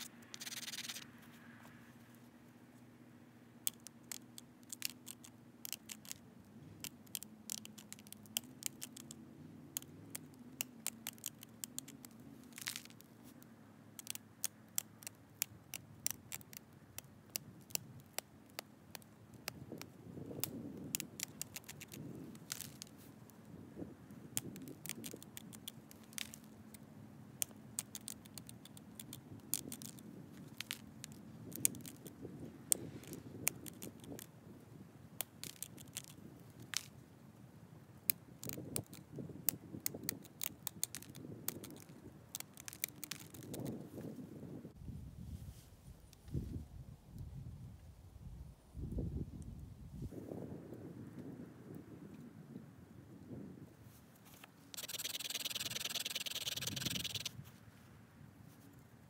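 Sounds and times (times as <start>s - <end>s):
stone flakes clicking off: 0.0s - 1.0s, 3.7s - 6.2s, 6.8s - 9.2s, 9.8s - 13.1s, 14.0s - 23.0s, 39.9s - 43.7s, 54.8s - 57.3s.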